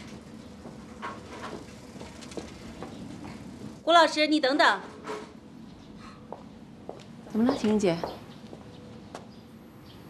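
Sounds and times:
bicycle wheeled clicking and rattling: 0.1s - 2.8s.

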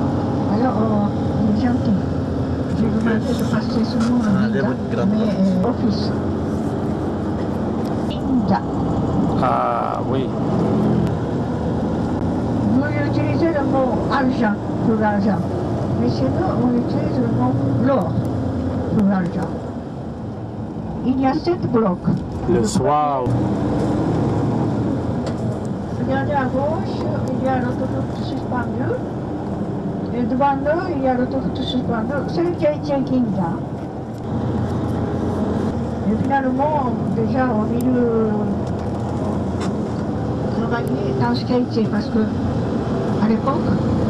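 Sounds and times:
bus engine and road noise: 0.0s - 44.0s.

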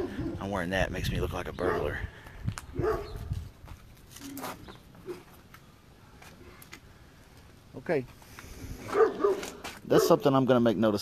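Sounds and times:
dog barking: 1.6s - 2.0s, 2.8s - 3.2s, 8.9s - 10.2s.

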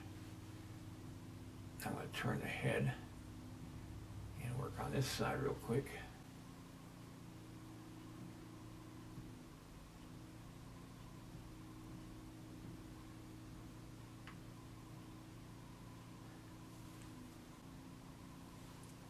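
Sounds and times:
faint low engine hum: 0.0s - 19.0s.

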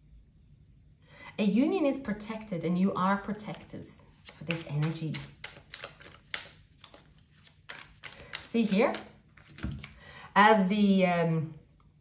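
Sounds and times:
cards clicking and snapping: 3.4s - 10.0s.

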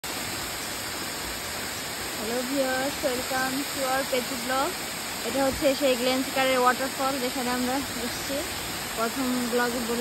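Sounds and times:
waterfall rushing: 0.0s - 10.0s.

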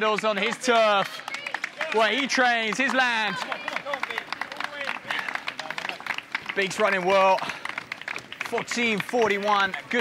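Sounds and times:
spectators clapping: 0.0s - 10.0s.

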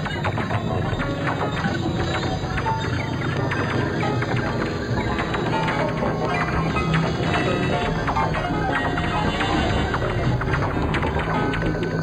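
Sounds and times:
steady low drone: 0.0s - 12.0s.

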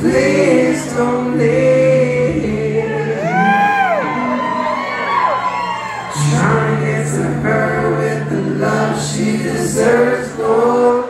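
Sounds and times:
crowd singing along: 0.0s - 5.1s, 6.0s - 11.0s
reggae band singers: 0.0s - 5.3s, 6.0s - 11.0s
whooping vocal glide: 2.5s - 7.4s.

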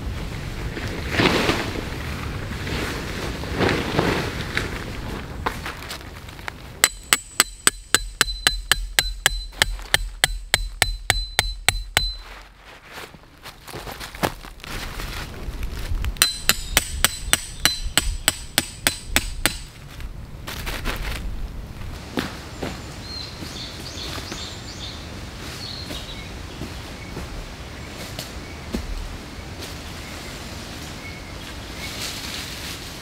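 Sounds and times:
hammer striking metal tent peg: 6.8s - 12.3s, 16.2s - 19.7s.

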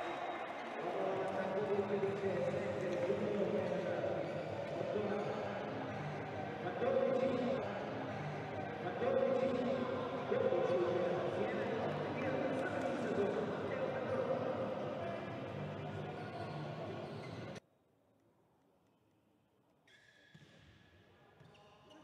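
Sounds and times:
men talking: 0.0s - 17.6s.

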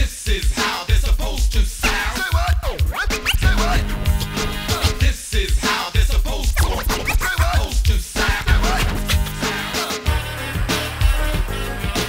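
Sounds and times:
drum beat with heavy kick: 0.0s - 9.6s
record scratching: 1.8s - 5.1s, 6.3s - 9.7s.

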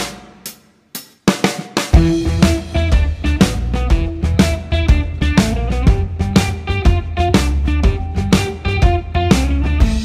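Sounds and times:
drum and cymbal fill: 0.0s - 10.0s.

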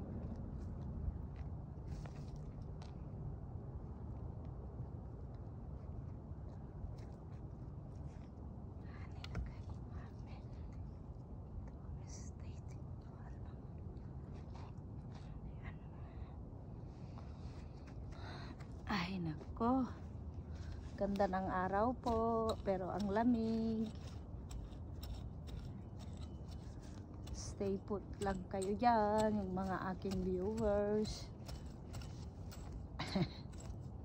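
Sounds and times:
steady low rumble: 0.0s - 34.0s
weeds rustling being pulled: 20.6s - 33.8s.

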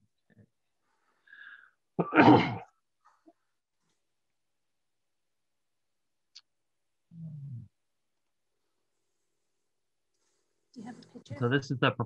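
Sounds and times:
loud sneeze: 2.0s - 2.7s.

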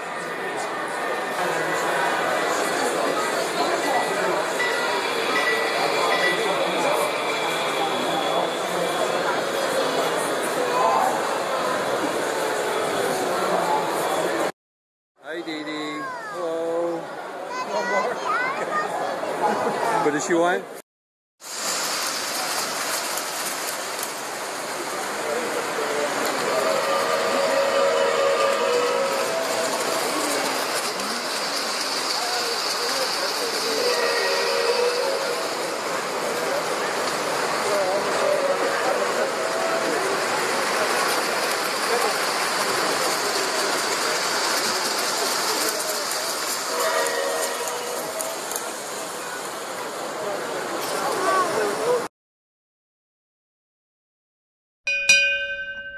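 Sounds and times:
crowded exhibition hall noise: 0.0s - 14.5s, 15.2s - 20.8s, 21.8s - 52.1s
model trains running: 0.0s - 14.5s, 21.5s - 52.1s.

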